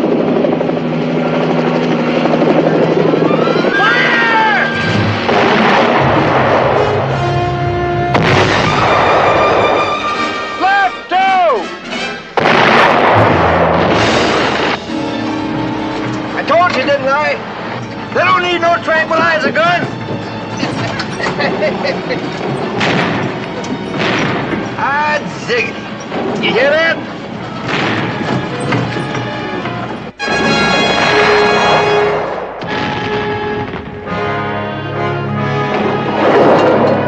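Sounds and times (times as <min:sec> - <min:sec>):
dramatic orchestral music: 0:03.1 - 0:37.0
heavy explosions: 0:04.8 - 0:10.5, 0:12.4 - 0:34.5, 0:35.6 - 0:37.0.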